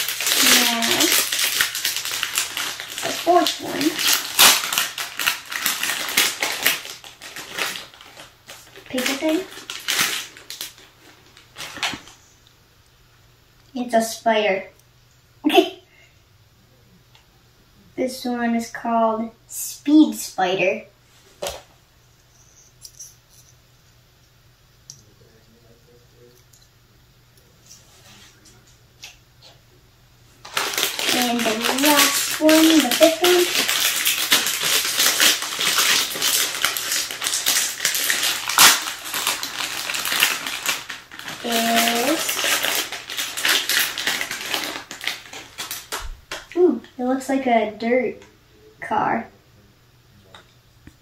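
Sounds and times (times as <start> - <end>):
plastic packet crackling: 0.0 - 12.2, 30.4 - 46.6.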